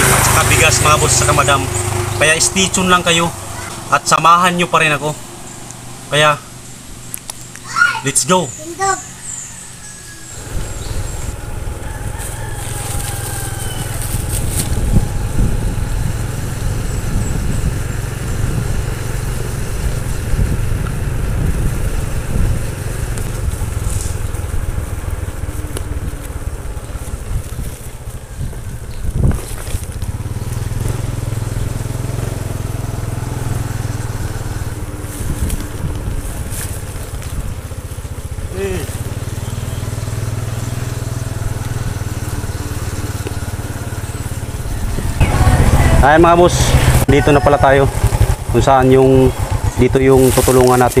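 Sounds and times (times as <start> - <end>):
motorcycle engine running: 0.0 - 7.6, 9.0 - 51.0
wind buffeting microphone: 10.3 - 51.0.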